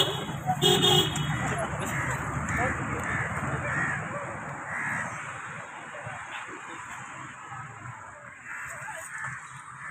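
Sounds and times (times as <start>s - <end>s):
crow cawing: 1.3s - 4.1s, 4.7s - 5.2s, 8.3s - 9.9s.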